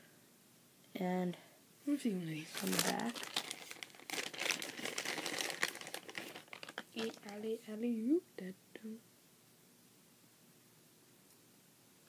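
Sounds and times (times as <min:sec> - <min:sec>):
plastic bait crackling in hands: 0:02.6 - 0:07.4.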